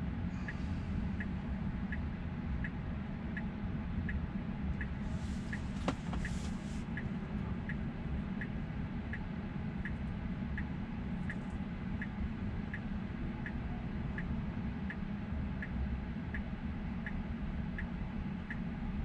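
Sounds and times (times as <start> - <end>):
low cabin hum: 0.0 - 19.0
turn signal ticking: 0.4 - 19.0.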